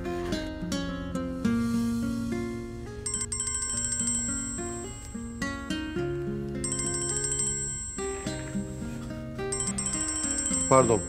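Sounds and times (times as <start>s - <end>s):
phone melodic ringtone: 3.1s - 5.8s, 6.6s - 8.6s, 9.5s - 11.0s.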